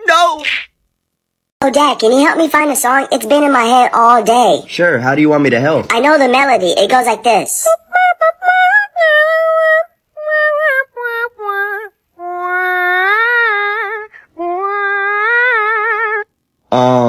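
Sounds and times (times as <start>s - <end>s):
high-pitched voice singing: 7.6s - 17.0s.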